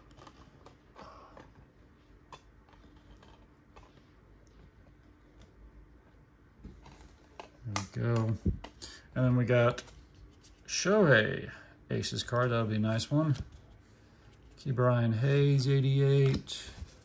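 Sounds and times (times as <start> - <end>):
cards clicking and scraping on table: 15.2 - 17.0.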